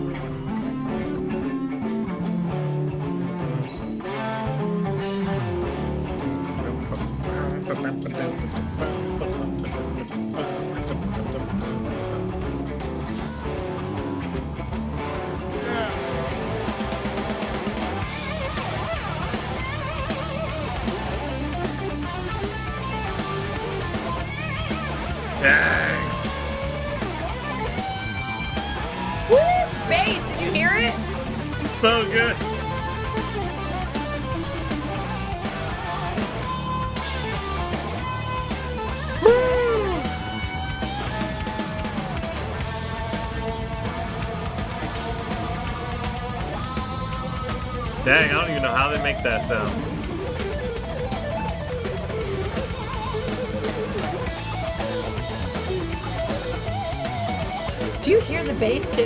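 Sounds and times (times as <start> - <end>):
bass guitar: 0.0 - 59.0
distorted electric guitar: 0.0 - 59.0
drums: 0.0 - 59.0.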